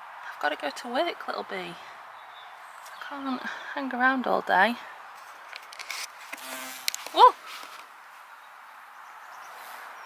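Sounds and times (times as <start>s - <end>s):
bee wings buzzing: 6.1s - 7.6s.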